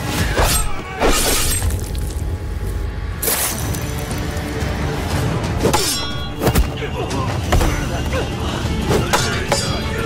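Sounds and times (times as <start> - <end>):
dramatic film music: 0.0 - 10.0.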